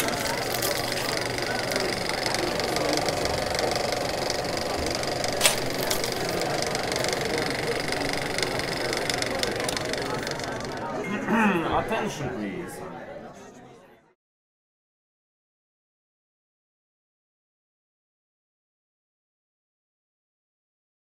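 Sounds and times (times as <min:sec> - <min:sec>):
sharp clicks: 0:00.0 - 0:10.9.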